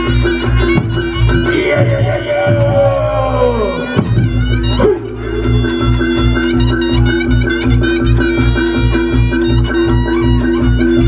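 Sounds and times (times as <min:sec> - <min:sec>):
gamelan music with drums: 0:00.0 - 0:11.0.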